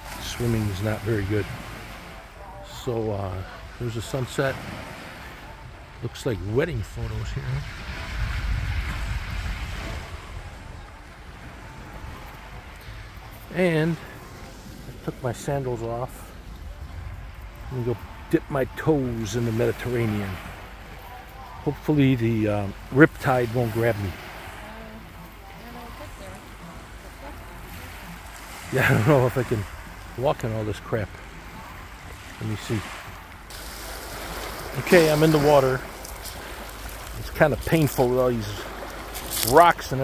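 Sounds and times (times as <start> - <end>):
waves washing onto pebbly shore: 0.0 - 40.0
wind buffeting microphone: 6.9 - 13.5.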